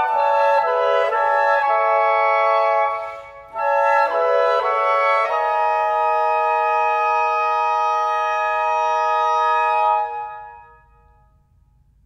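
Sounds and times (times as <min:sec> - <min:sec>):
reed quintet holding chord: 0:00.0 - 0:10.9.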